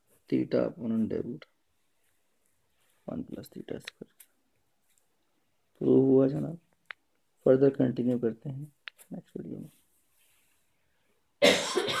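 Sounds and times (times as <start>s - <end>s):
person coughing loudly: 11.4s - 12.0s.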